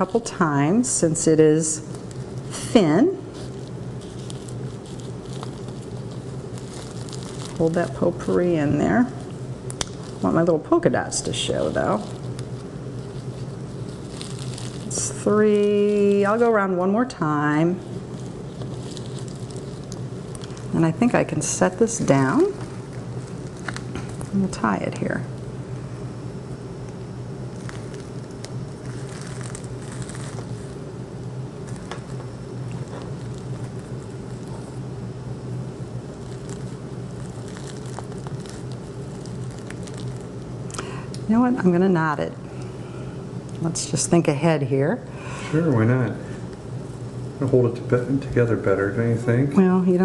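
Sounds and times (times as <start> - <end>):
low hum: 0.0 - 50.0
ribbon rustling and crackling: 1.8 - 16.6, 17.7 - 25.5, 27.5 - 41.3.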